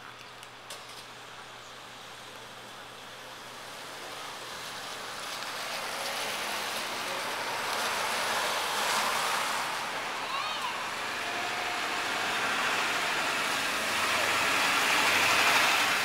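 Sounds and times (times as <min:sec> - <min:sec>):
passing car: 0:04.6 - 0:16.0.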